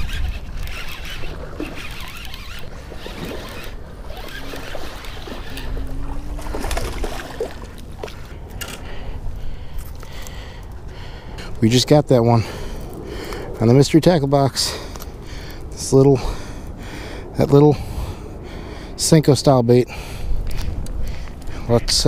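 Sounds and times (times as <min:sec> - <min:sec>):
fishing reel cranking: 0:00.0 - 0:06.0
water splashing: 0:00.0 - 0:08.4
wind rumble on microphone: 0:00.0 - 0:22.0.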